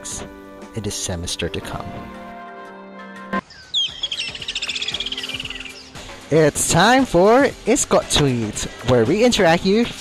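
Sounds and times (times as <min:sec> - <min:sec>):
background music chord: 0:00.0 - 0:09.6
falling bird chirp trill: 0:03.0 - 0:06.0.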